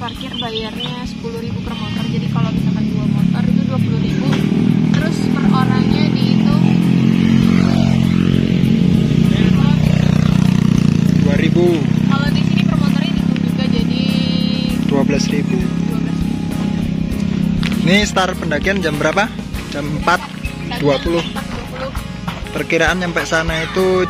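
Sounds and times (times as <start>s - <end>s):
people talking: 0.0s - 6.9s, 9.2s - 10.1s, 11.2s - 15.7s, 17.8s - 22.0s, 22.6s - 24.0s
background music: 0.0s - 24.0s
motorcycle engine running: 0.0s - 24.0s.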